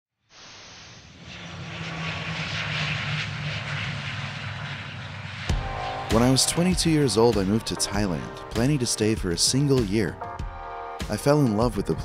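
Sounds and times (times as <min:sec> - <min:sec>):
hiss: 0:00.2 - 0:01.3
aircraft engine drone: 0:00.3 - 0:12.0
sharp hit: 0:05.4 - 0:08.8.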